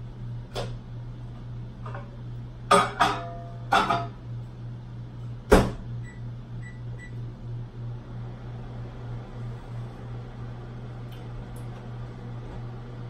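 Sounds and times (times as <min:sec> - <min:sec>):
microwave humming: 0:00.0 - 0:13.0.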